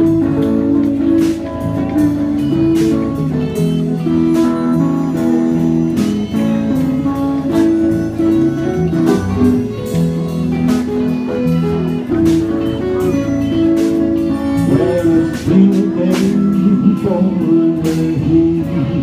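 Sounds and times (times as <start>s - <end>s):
harmonica: 0.0s - 19.0s
strummed guitars: 0.0s - 19.0s
man singing: 14.3s - 19.0s.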